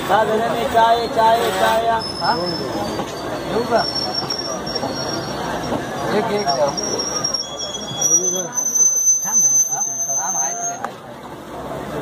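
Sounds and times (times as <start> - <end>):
train coaches rolling past: 0.0 - 12.0
train wheel squeals: 1.0 - 11.0.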